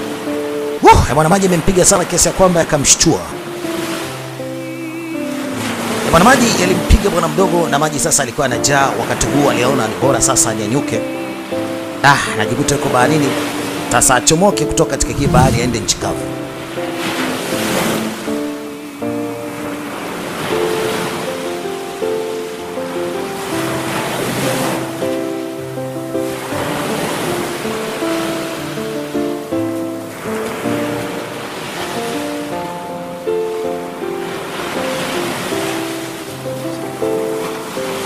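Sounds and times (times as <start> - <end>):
ocean surf washing: 0.0 - 38.0
slow instrumental music: 0.0 - 38.0.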